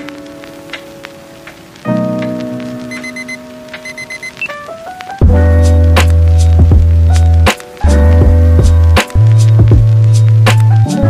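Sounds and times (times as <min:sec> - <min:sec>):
faint scattered clicks: 0:00.0 - 0:05.2
background music of held chords: 0:00.0 - 0:11.0.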